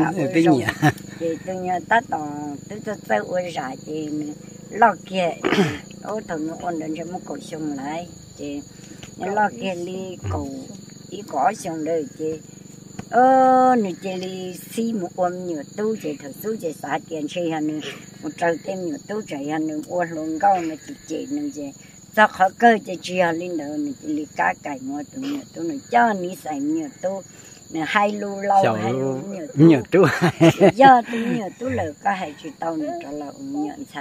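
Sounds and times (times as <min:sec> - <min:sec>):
elderly woman speaking: 0:00.0 - 0:08.6, 0:09.2 - 0:12.4, 0:13.1 - 0:29.8, 0:30.6 - 0:34.0
high-pitched insect drone: 0:00.0 - 0:34.0.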